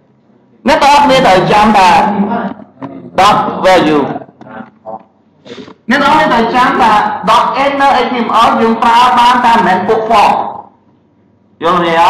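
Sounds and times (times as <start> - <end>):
man speaking: 0.6 - 10.8.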